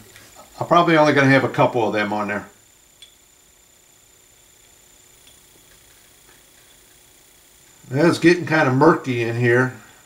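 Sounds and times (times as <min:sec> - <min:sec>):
faint steady hiss: 0:00.0 - 0:10.0
thin high whine: 0:00.0 - 0:10.0.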